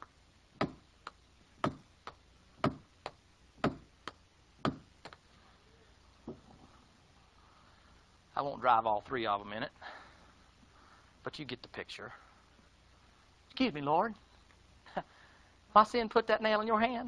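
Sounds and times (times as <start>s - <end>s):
hammer driving a nail: 0.6s - 0.8s, 1.6s - 1.8s, 2.6s - 3.9s, 4.7s - 5.2s.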